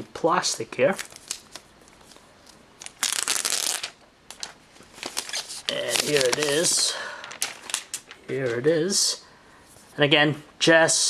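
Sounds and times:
plastic wrap rustling: 0:00.8 - 0:08.7.

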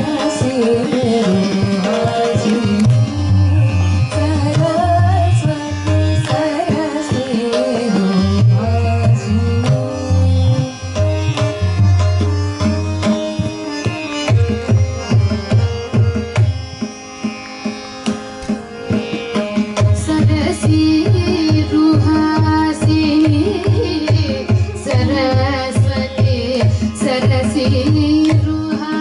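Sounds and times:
violin melody: 0:00.0 - 0:29.0.

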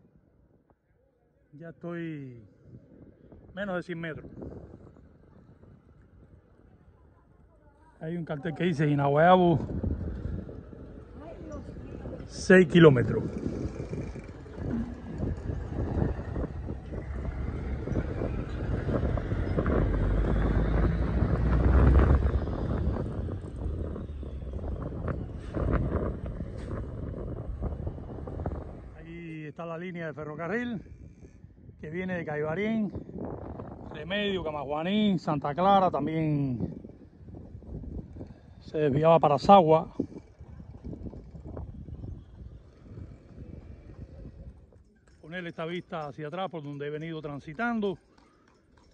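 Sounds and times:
wind buffeting microphone: 0:02.4 - 0:07.6, 0:08.2 - 0:29.5, 0:30.2 - 0:46.0
vehicle engine rumble: 0:08.4 - 0:29.6, 0:36.4 - 0:46.0.

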